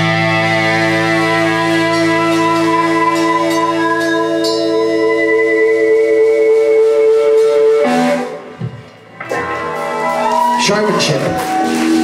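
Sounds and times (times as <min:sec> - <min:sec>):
electric guitar chord ringing: 0:00.0 - 0:06.1, 0:09.0 - 0:10.4.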